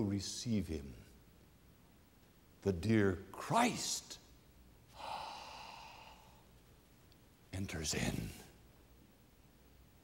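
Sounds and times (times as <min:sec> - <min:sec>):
man gasping in-breath: 0:04.9 - 0:06.4.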